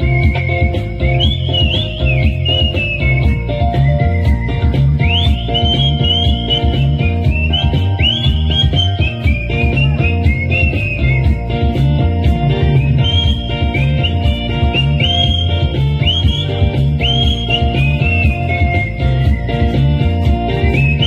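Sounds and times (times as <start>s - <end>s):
backing track with bass beat: 0.0s - 21.0s
whistled melody: 0.0s - 21.0s.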